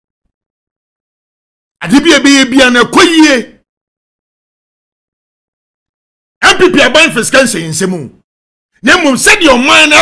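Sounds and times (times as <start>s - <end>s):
man's voice: 1.8s - 3.6s, 6.4s - 8.2s, 8.8s - 10.0s.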